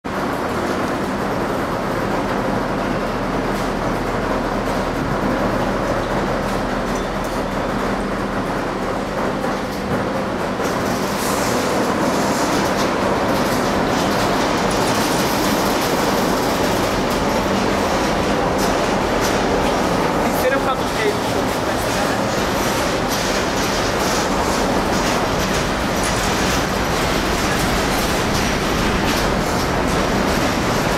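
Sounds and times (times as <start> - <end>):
train wheels rumbling on rail: 0.1 - 30.9
wheels clicking over rail joints: 9.6 - 30.9.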